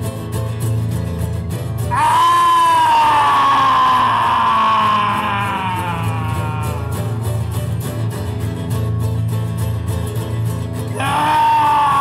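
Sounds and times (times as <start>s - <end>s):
acoustic guitars playing: 0.0s - 12.0s.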